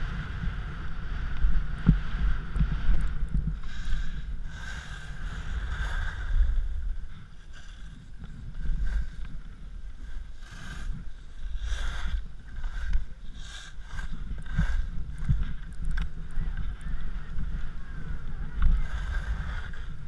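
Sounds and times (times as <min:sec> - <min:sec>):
skis scraping on snow: 0:00.0 - 0:20.0
wind rumbling on microphone: 0:00.0 - 0:20.0.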